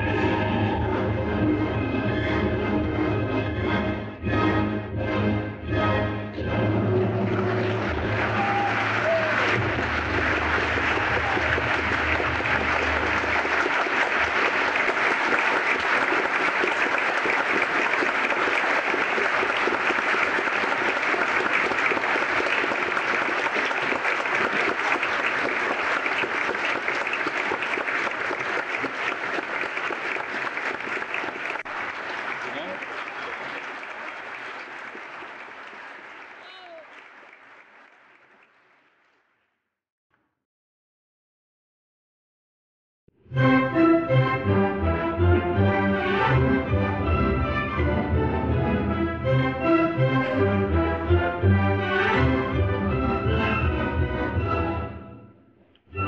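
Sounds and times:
audience applauding: 7.1s - 39.3s, 45.9s - 47.8s.

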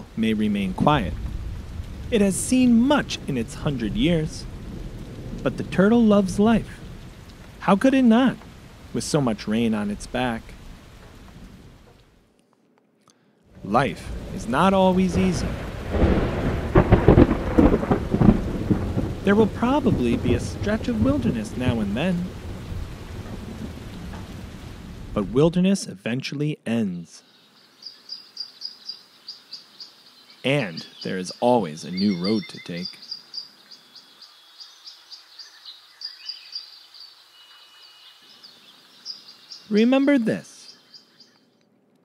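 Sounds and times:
thunder rumbling: 0.0s - 11.9s, 13.5s - 25.6s
heavy rain: 0.0s - 12.3s, 13.5s - 25.8s, 27.3s - 41.4s
faint hiss: 0.0s - 12.4s, 13.1s - 17.6s, 18.2s - 41.6s
small birds chirping: 26.9s - 41.7s.

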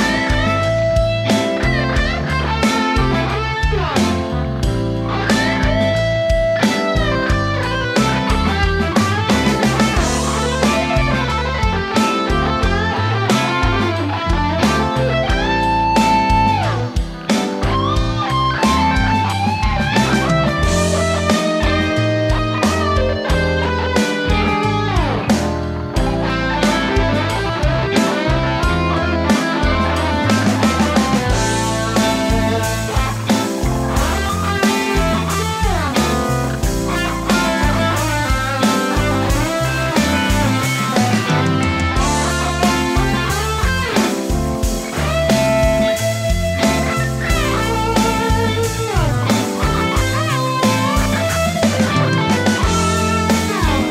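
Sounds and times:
blues backing track: 0.0s - 53.9s
overdriven electric guitar solo: 0.0s - 53.9s.

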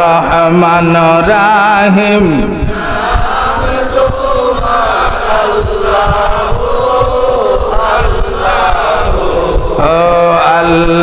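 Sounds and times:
man chanting through microphone: 0.0s - 11.0s
low thumps: 2.3s - 11.0s.

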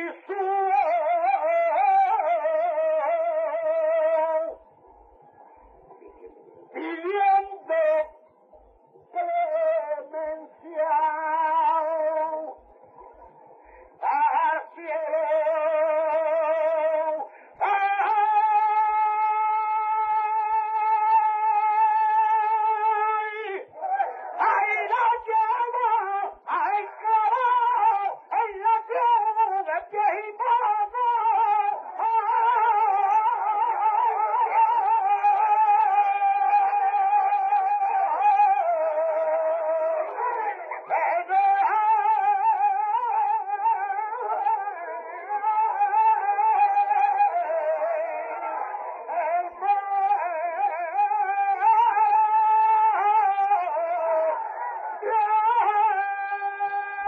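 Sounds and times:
man singing unaccompanied: 0.0s - 4.6s, 6.7s - 8.2s, 9.0s - 12.6s, 13.9s - 57.0s
faint background noise: 0.0s - 57.0s.

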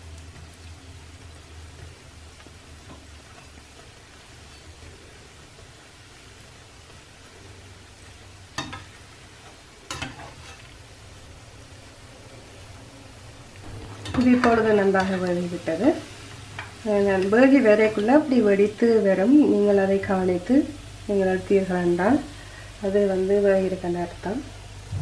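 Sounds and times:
dough deep-frying in oil: 0.0s - 25.0s.

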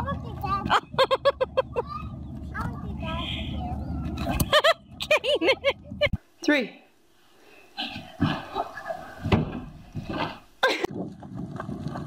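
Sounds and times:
wind buffeting microphone: 10.9s - 12.0s.

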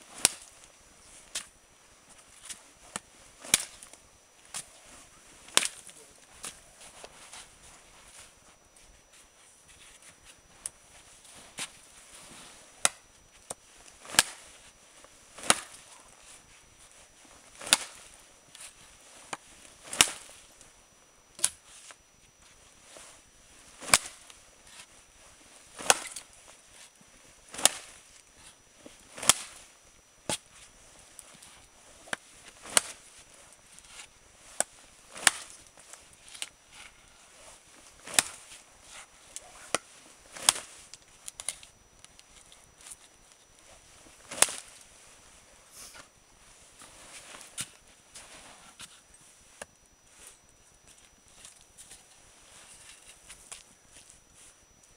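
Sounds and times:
knife chopping wooden stake: 15.4s - 15.8s.

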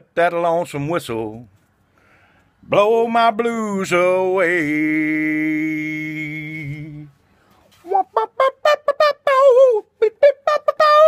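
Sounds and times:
man's falsetto yips and calls: 7.8s - 11.0s.

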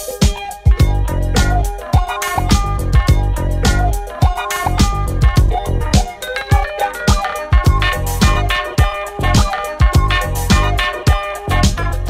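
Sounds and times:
bass line: 0.0s - 12.0s
percussion: 0.0s - 12.0s
kick drum: 0.2s - 11.8s.

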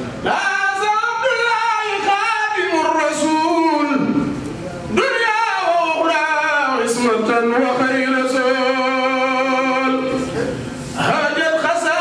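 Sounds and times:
man singing unaccompanied: 0.2s - 4.3s, 4.9s - 10.3s, 11.0s - 12.0s.

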